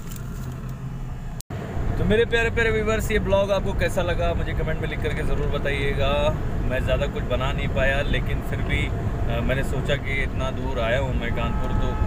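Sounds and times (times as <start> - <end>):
car engine rumble: 0.0 - 12.0
road noise: 0.0 - 12.0.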